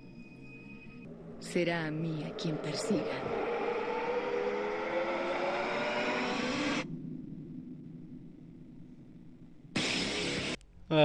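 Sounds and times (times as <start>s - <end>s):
sustained low chord: 0.0s - 10.5s.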